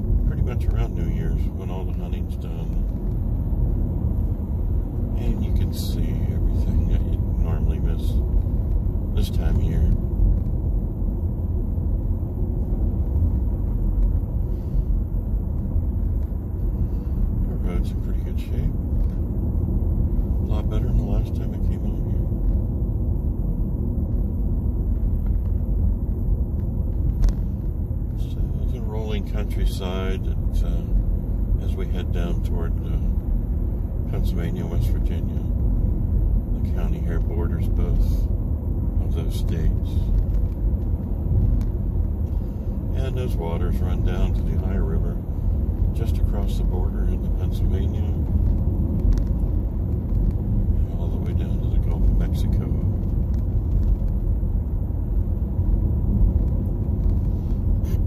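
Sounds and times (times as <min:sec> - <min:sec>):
road noise inside car: 0:00.0 - 0:58.0.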